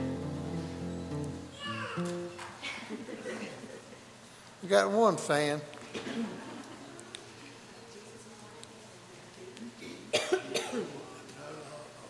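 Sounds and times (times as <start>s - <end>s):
person coughing: 9.8s - 10.9s.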